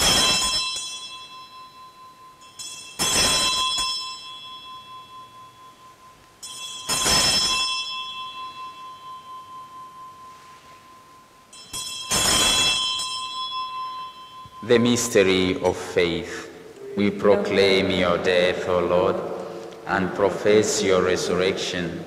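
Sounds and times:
altar bells ringing: 0:00.0 - 0:16.8.

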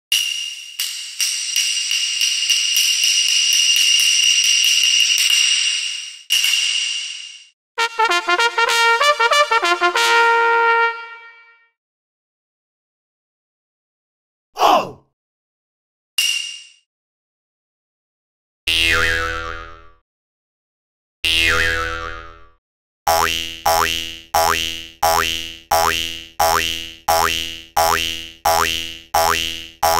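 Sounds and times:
cartoon boing sound effect: 0:18.7 - 0:19.9, 0:21.3 - 0:22.4, 0:23.1 - 0:29.9.

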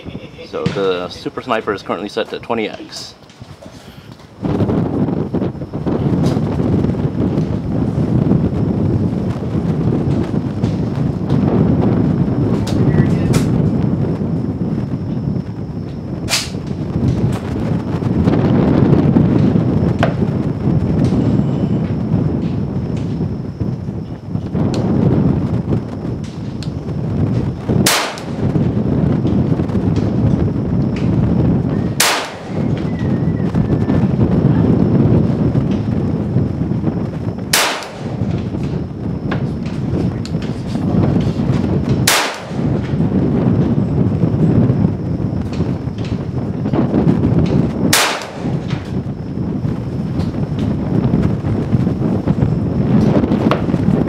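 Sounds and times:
low rumbling noise: 0:00.0 - 0:54.0
rifle shots: 0:27.8 - 0:28.5, 0:32.0 - 0:32.8, 0:37.5 - 0:38.4, 0:42.1 - 0:42.8, 0:47.9 - 0:48.9.

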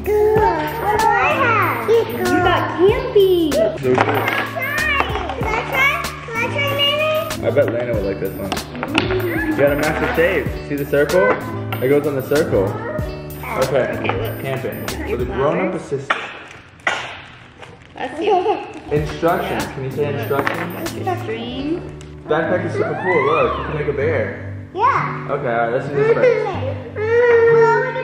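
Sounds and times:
children chattering: 0:00.0 - 0:15.5, 0:18.0 - 0:21.8
background music with steady beat: 0:00.0 - 0:15.6, 0:18.9 - 0:25.6.

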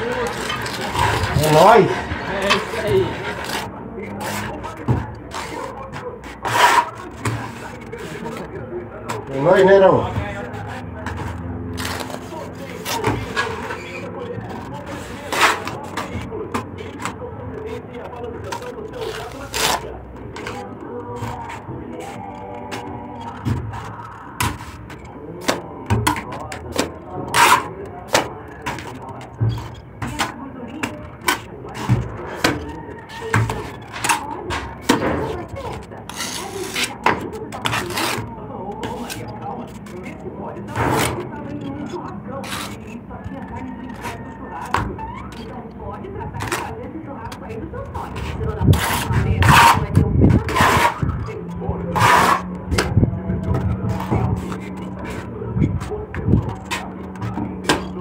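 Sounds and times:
scraping: 0:00.0 - 0:58.0
voices in background: 0:00.0 - 0:58.0.

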